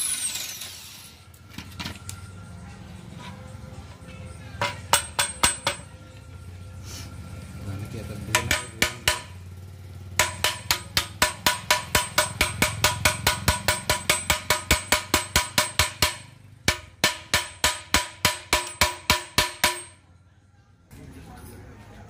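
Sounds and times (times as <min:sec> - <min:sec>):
metal pipe banging on concrete: 0:04.6 - 0:06.0, 0:08.2 - 0:09.4, 0:10.1 - 0:20.0.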